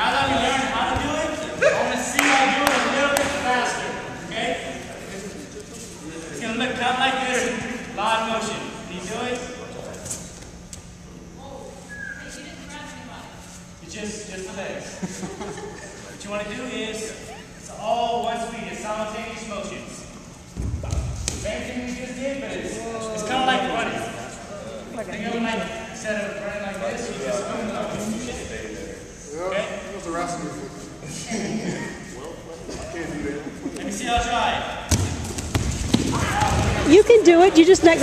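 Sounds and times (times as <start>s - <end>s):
people talking: 0.0s - 10.1s, 36.2s - 38.0s.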